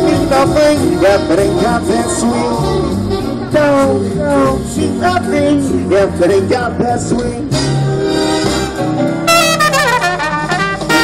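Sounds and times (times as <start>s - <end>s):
backing track: 0.0s - 11.0s
horn melody through loudspeaker: 7.5s - 11.0s.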